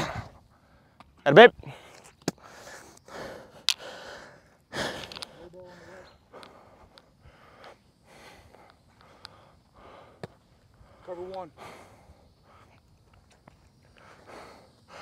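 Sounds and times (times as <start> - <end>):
person breathing hard: 1.6 - 12.9, 13.8 - 15.0.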